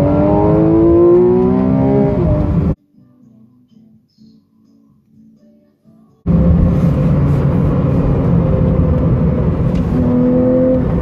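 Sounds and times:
car engine and road noise: 0.0 - 2.8, 6.2 - 11.0.

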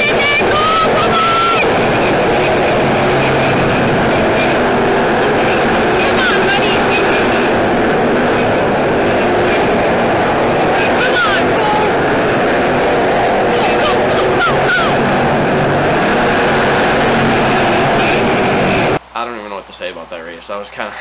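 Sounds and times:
stock car engines racing: 0.0 - 19.0.

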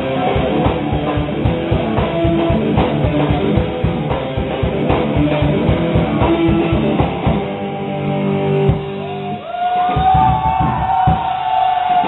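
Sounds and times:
drum hit: 0.4 - 7.5, 9.9 - 11.4.

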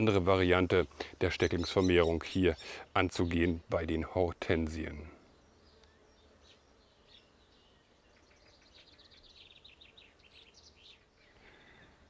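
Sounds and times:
faint birdsong: 0.0 - 12.0.

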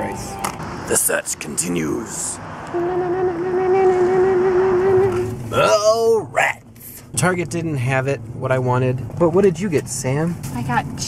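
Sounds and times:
long held note: 2.7 - 5.4.

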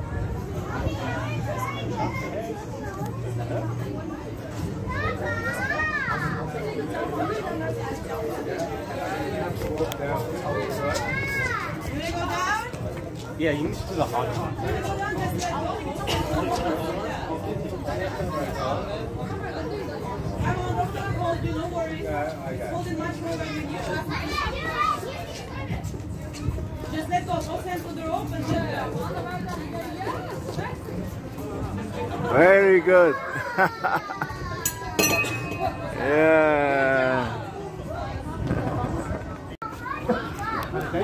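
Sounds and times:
people chattering: 0.0 - 41.0.

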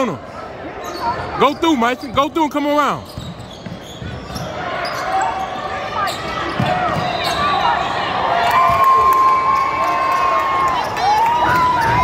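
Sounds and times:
voices in a gym: 0.0 - 12.0
sneakers squeaking: 0.2 - 8.2.

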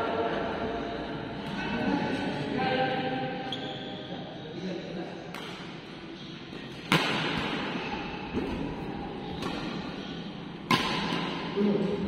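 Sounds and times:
rackets striking shuttlecock: 5.3 - 5.8, 6.7 - 8.7, 10.6 - 11.5.

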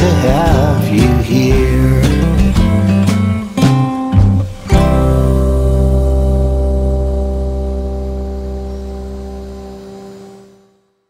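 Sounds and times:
acoustic guitar and ukulele chord: 0.0 - 9.9
deep bass note: 0.0 - 10.4.

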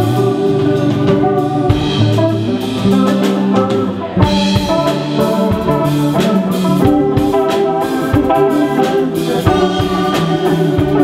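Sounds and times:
drum kit: 0.0 - 11.0
electric bass: 0.0 - 11.0
electric guitar: 0.0 - 11.0.

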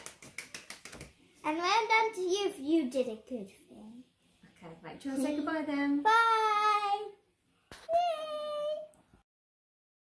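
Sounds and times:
girl calling yay: 7.9 - 8.9.

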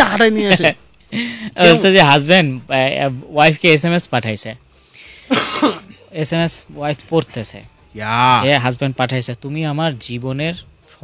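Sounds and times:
person speaking: 0.0 - 3.2, 5.9 - 9.6
person coughing: 5.3 - 6.0.

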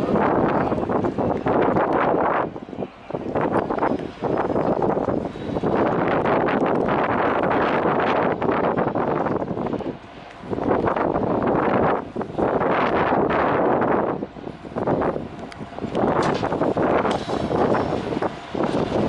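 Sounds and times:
diesel locomotive approaching: 0.0 - 19.0
wind gusting on microphone: 0.0 - 19.0.

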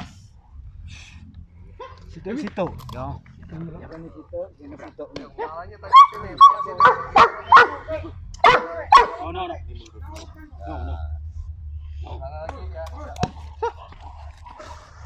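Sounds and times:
dog barking: 1.8 - 2.1, 5.4 - 9.3.

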